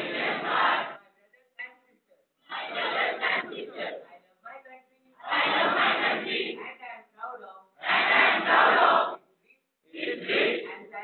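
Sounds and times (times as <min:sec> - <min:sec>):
group reciting in unison: 0:00.0 - 0:01.1, 0:02.4 - 0:04.3, 0:05.2 - 0:06.8, 0:07.7 - 0:11.0.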